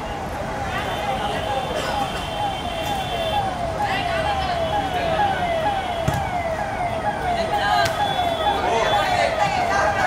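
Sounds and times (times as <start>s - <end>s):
siren falling wail: 1.9s - 10.0s.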